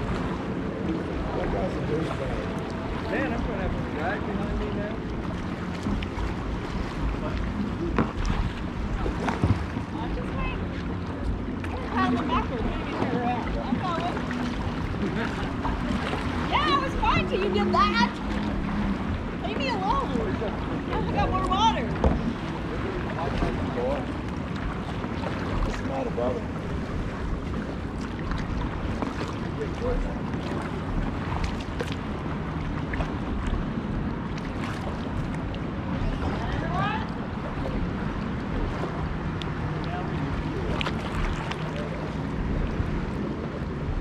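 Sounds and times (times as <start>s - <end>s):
paddle strokes: 0.0s - 44.0s
water sloshing: 0.0s - 44.0s
wind rumbling on microphone: 0.0s - 44.0s.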